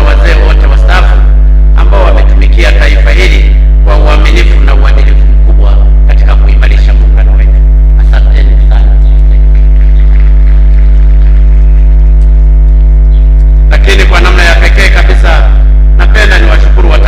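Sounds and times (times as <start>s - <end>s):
man speaking into a microphone: 0.0s - 10.6s, 13.7s - 17.0s
electrical mains hum: 0.0s - 17.0s.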